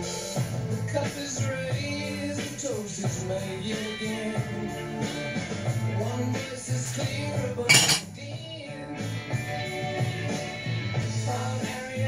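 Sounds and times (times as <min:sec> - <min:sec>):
rock music with singing: 0:00.0 - 0:12.0
metallic clatter of beer can: 0:07.7 - 0:08.1.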